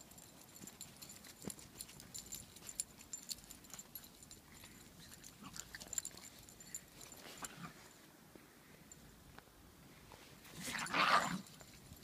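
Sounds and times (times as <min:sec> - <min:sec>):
rough dog vocal sound: 0:10.5 - 0:11.5.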